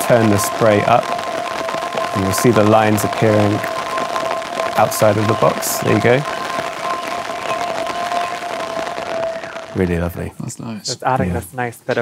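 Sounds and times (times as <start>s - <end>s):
grainy hiss: 0.0s - 12.0s.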